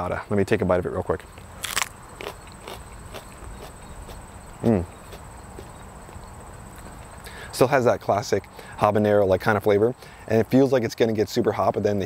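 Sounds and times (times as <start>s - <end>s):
man chewing crunchy pepper: 1.4s - 7.4s.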